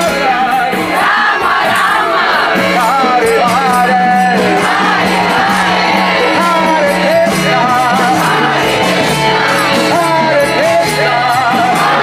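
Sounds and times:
crowd singing a chant: 0:00.0 - 0:12.0
percussion steady beat: 0:00.0 - 0:12.0.

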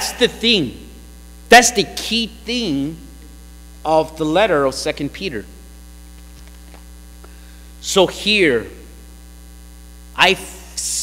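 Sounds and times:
man speaking: 0:00.0 - 0:03.2, 0:03.8 - 0:05.6, 0:07.8 - 0:09.0, 0:10.2 - 0:11.0
electrical mains hum: 0:00.0 - 0:11.0.

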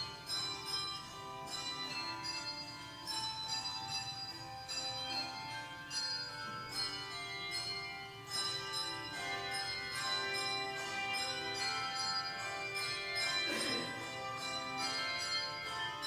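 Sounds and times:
handbell choir playing: 0:00.0 - 0:16.0.

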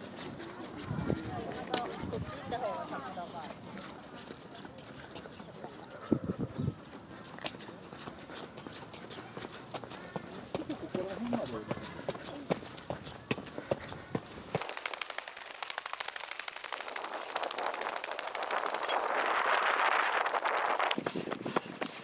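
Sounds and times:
footsteps on paved path: 0:00.0 - 0:15.8, 0:16.9 - 0:22.0
people talking: 0:00.4 - 0:05.9, 0:10.6 - 0:12.6.

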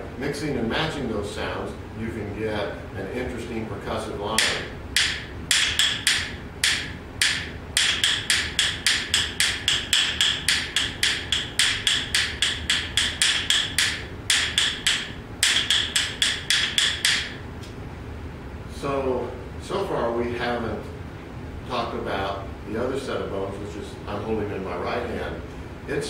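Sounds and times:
wooden bones clacking: 0:04.4 - 0:17.4.

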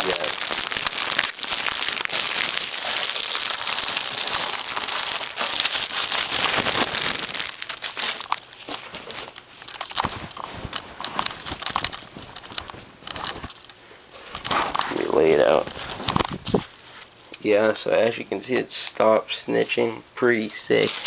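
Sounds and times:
plastic packaging crinkling: 0:00.0 - 0:16.7, 0:20.7 - 0:21.0.

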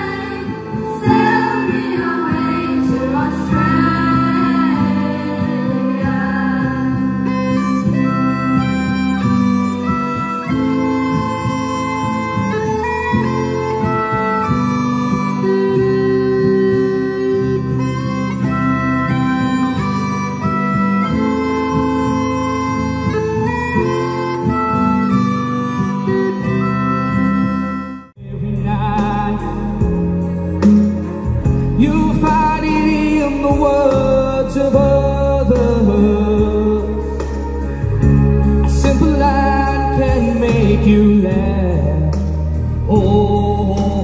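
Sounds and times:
violins playing melody: 0:00.0 - 0:28.2
acoustic guitar accompaniment: 0:00.0 - 0:44.0.

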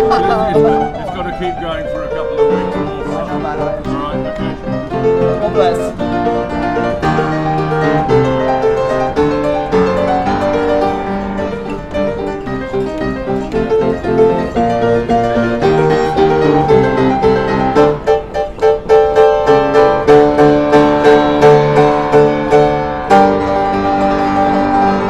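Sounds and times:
upright piano playing: 0:00.0 - 0:25.0.

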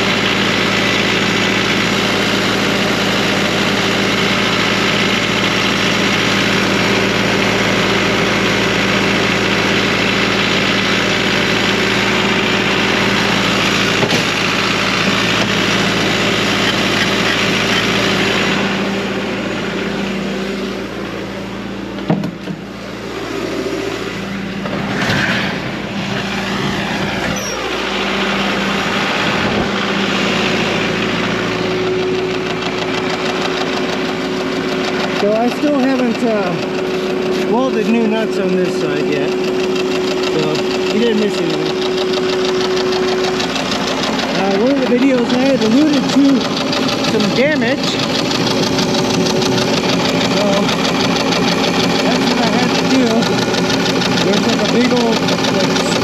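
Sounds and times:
diesel engine idling: 0:00.0 - 0:56.0.

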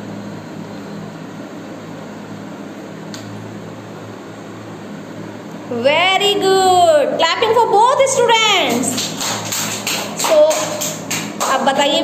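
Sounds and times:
group clapping: 0:08.6 - 0:12.0.

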